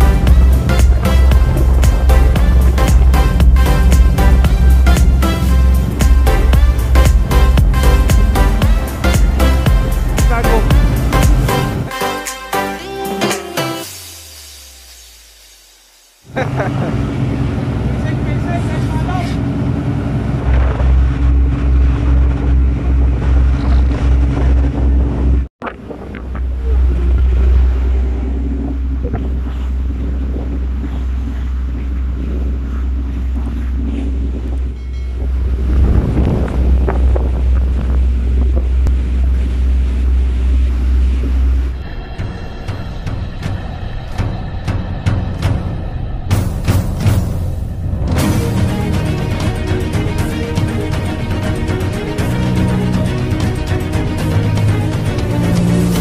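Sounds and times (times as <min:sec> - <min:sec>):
deep ship engine drone: 0:00.0 - 0:56.0
wind buffeting microphone: 0:16.8 - 0:52.2.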